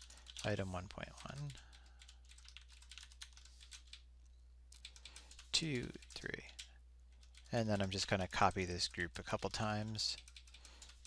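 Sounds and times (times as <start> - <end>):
computer keyboard typing: 0.0 - 4.1, 4.8 - 11.0.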